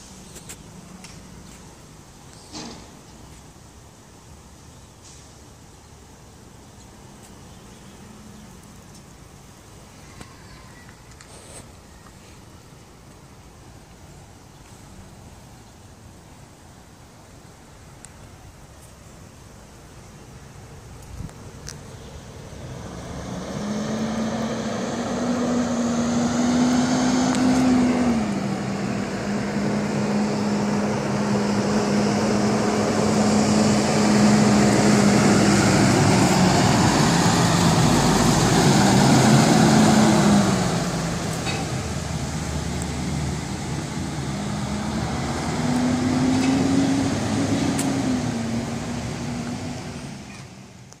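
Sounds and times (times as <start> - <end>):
school bus driving past: 22.0 - 50.9.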